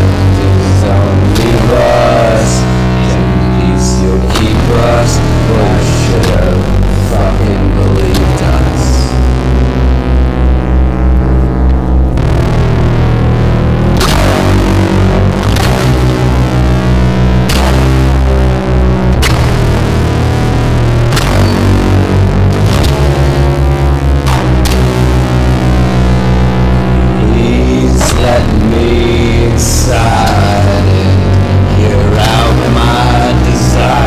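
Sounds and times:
distorted rock music: 0.0s - 34.0s.

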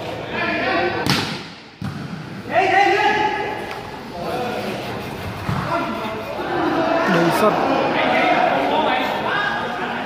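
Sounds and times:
volleyball being struck: 1.0s - 2.4s.

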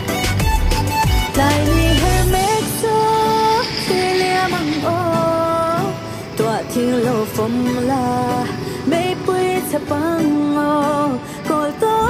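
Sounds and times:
instrumental accompaniment: 0.0s - 12.0s
person singing long notes: 1.3s - 12.0s.

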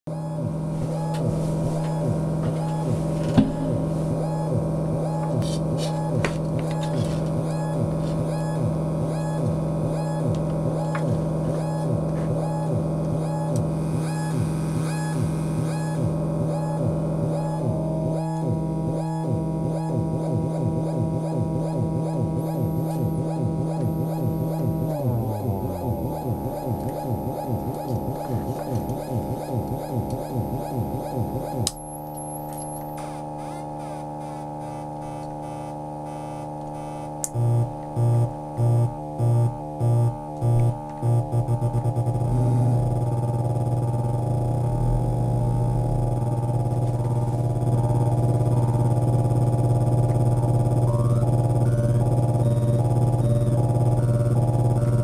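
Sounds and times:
synthesizer droning with pulsing: 0.1s - 55.0s.

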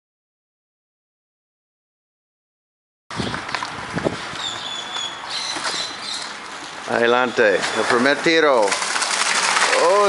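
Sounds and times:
thin high squeaks: 4.4s - 6.4s
wheelbarrow wheel scraping concrete: 5.4s - 10.0s
wheelbarrow frame clicks: 7.5s - 10.0s.

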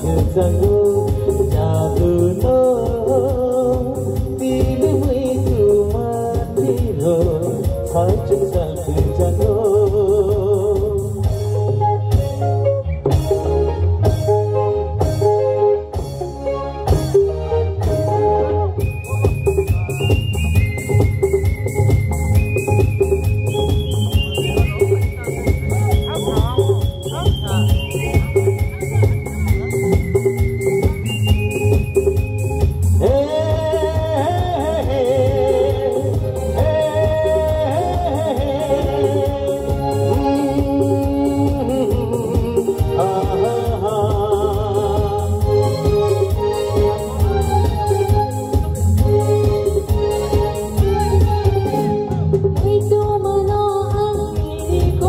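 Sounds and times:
bass line: 0.0s - 55.0s
keyboard notes: 0.0s - 55.0s
drum strikes: 18.8s - 53.0s.

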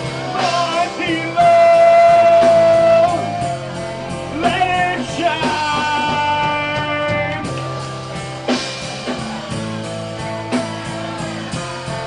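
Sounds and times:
singer holding long notes: 0.0s - 8.3s
rock band playing live: 0.0s - 12.0s.

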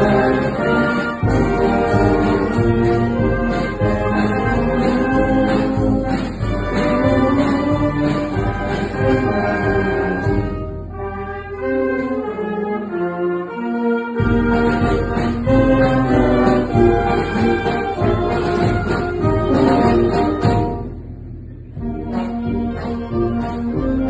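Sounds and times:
wind band playing a march: 0.0s - 21.1s, 21.7s - 24.0s.

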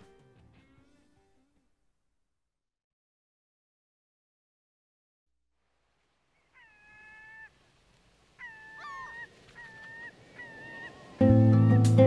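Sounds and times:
quiet hiss: 5.4s - 12.0s
drawn-out animal cries: 6.4s - 7.6s, 8.4s - 11.2s.

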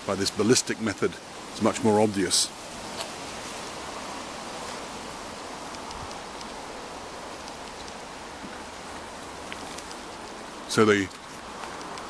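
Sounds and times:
outdoor background hiss: 0.0s - 12.0s
faint ticks: 5.6s - 6.7s, 7.4s - 12.0s.

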